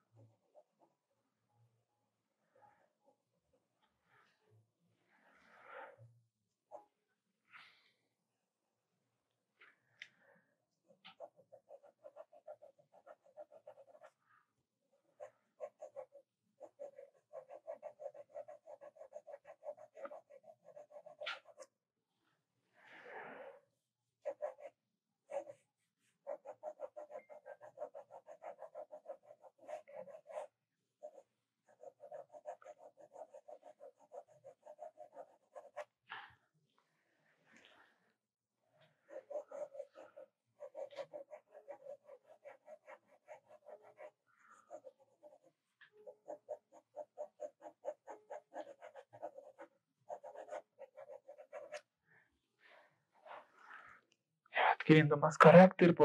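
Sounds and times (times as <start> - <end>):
pencil shading on paper: 0.0 - 1.2, 10.5 - 21.8, 22.4 - 36.2, 37.7 - 53.8.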